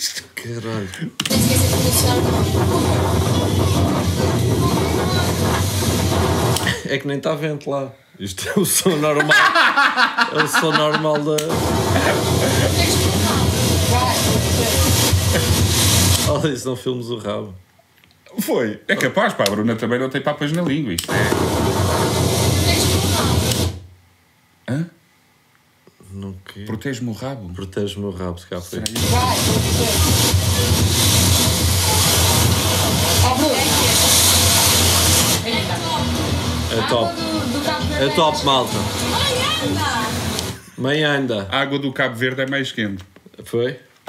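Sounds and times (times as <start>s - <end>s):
harsh loud hiss: 0.7s - 7.0s, 9.0s - 16.6s, 21.0s - 23.9s, 28.8s - 41.0s
low hum: 1.0s - 6.9s, 11.4s - 16.5s.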